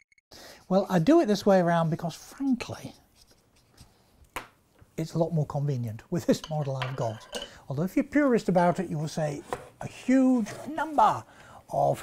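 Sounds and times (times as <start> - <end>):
marker moving over paper: 2.2 - 4.1.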